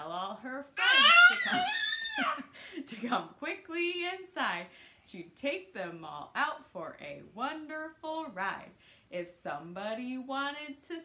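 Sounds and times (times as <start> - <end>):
faint baby voice sounds: 0.8 - 2.4
baby squealing: 0.8 - 2.5.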